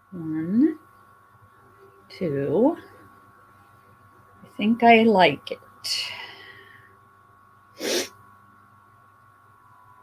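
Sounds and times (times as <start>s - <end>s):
faint steady hum: 0.0s - 10.0s
sharp burst of breath: 7.8s - 8.2s.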